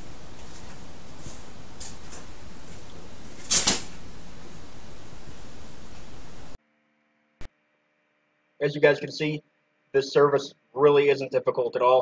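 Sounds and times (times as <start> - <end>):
background hiss: 0.0 - 6.6.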